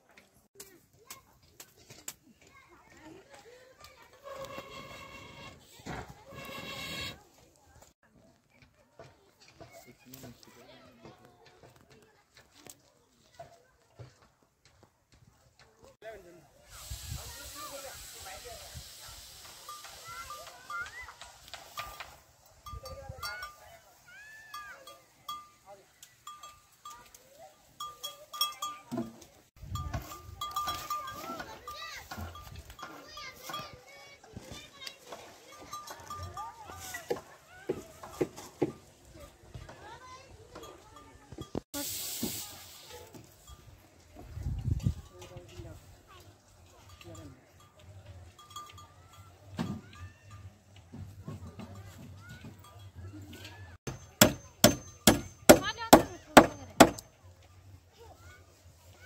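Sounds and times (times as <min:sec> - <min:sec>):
small bell clinking: 0:22.6 - 0:33.8, 0:35.4 - 0:37.1, 0:46.7 - 0:50.7.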